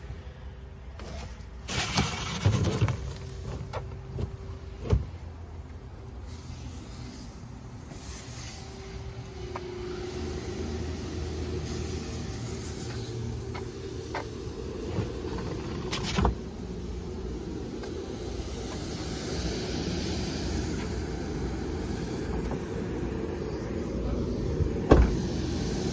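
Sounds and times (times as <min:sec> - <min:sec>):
vehicle engine low rumble: 0:00.0 - 0:25.9.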